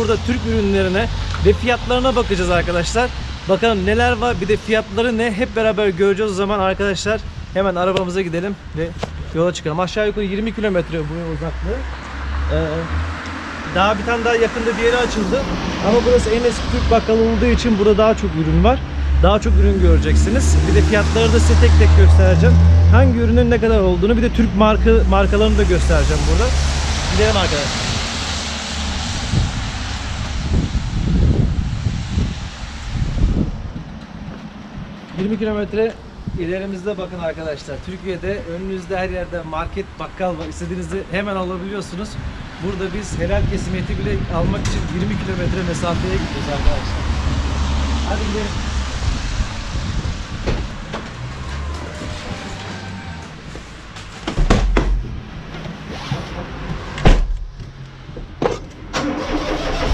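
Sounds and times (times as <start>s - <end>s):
wind buffeting microphone: 27.0s - 37.1s, 42.0s - 52.7s
car door slamming: 54.2s - 55.1s, 57.0s - 57.5s
car door clicks and knocks: 54.2s - 55.2s.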